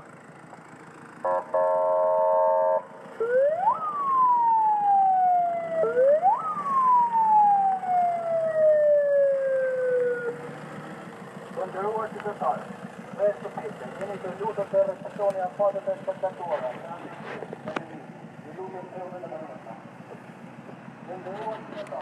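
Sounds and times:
siren horn tone: 0:01.2 - 0:04.0
police siren wailing: 0:01.2 - 0:10.8
loudspeaker voice: 0:13.2 - 0:17.8.

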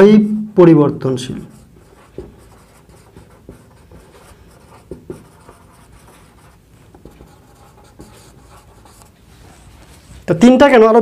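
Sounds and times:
marker scratching on whiteboard: 0:01.3 - 0:10.3
marker tapping on whiteboard: 0:01.8 - 0:09.1.

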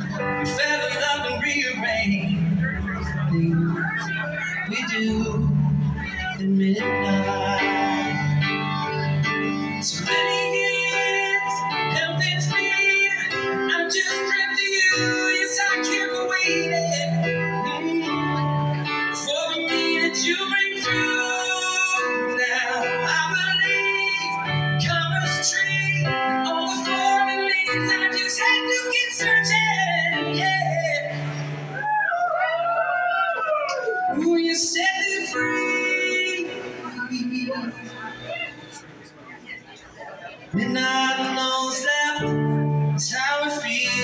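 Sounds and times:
bass line: 0:00.0 - 0:19.4
keyboard chords and melody: 0:00.0 - 0:44.0.

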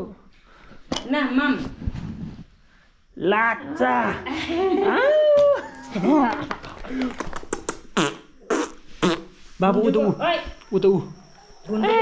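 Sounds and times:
small mouth clicks: 0:07.4 - 0:09.3.

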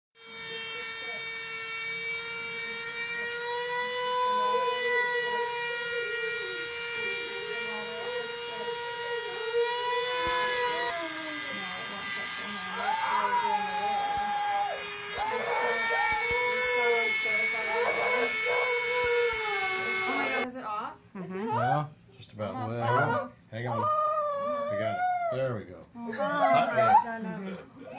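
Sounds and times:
rotary tool motor whining: 0:00.2 - 0:20.5.

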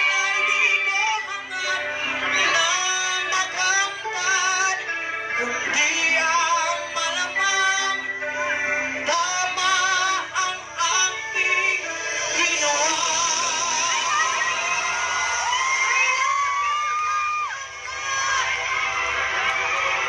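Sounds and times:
backing music: 0:00.0 - 0:20.0.

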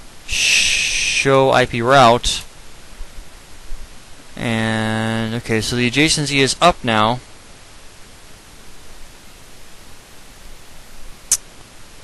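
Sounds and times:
microphone hiss: 0:00.0 - 0:12.0
man speaking: 0:00.3 - 0:02.5, 0:04.4 - 0:07.2.

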